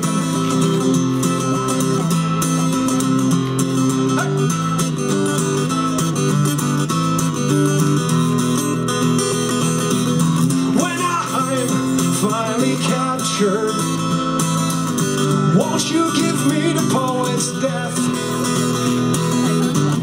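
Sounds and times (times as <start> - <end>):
acoustic guitar strumming: 0.0 - 20.0
man singing: 10.6 - 14.4, 15.2 - 18.9.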